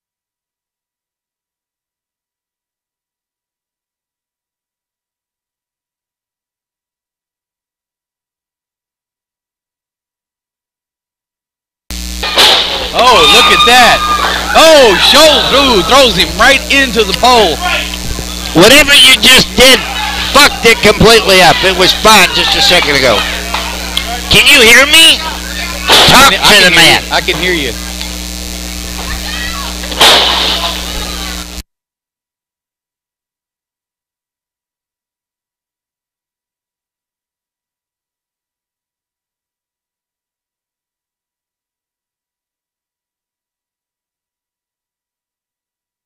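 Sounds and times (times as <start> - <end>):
low electrical hum: 11.9 - 31.6
loud crash: 12.2 - 13.0, 25.9 - 26.4, 30.0 - 30.8
loud noisy rush: 12.2 - 23.9
faint voices: 12.8 - 31.6
person speaking: 12.9 - 27.9.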